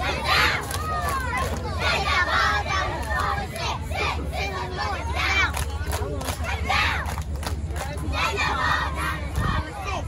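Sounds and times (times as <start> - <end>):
cheerleaders shouting a cheer: 0.0 - 7.2, 7.8 - 10.0
steady low rumble: 0.0 - 10.0.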